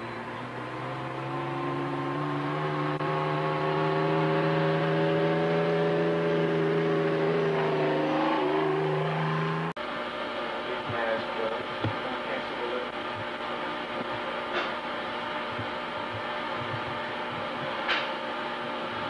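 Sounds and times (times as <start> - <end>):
motorcycle engine running: 0.0 - 9.8, 13.0 - 18.1.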